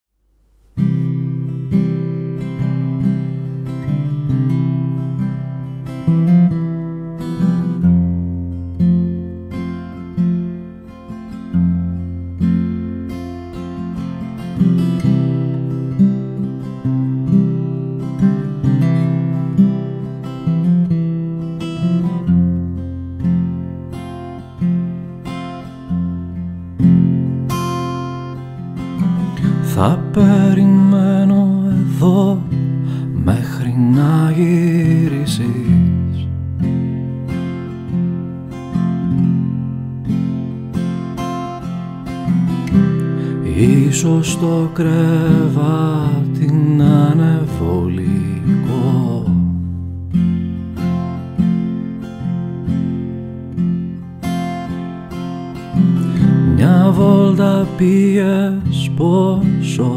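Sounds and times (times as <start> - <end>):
acoustic guitar plucked chords: 0.4 - 59.9.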